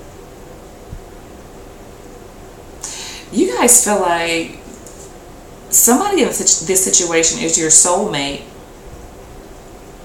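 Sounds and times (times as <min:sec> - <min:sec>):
steady room hiss: 0:00.0 - 0:10.0.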